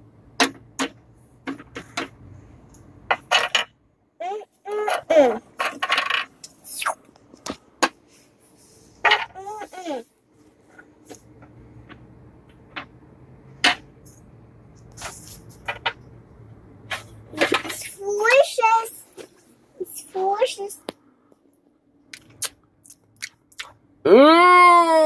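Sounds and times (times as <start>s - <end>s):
toddler babbling: 4.2s - 5.4s.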